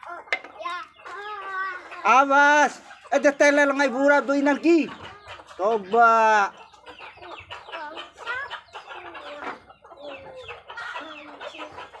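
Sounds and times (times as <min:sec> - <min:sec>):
poultry clucking: 0:00.0 - 0:12.0.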